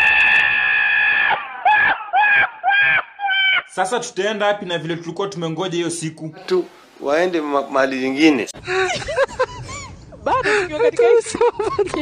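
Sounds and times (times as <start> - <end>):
donkey braying: 1.0 - 3.7.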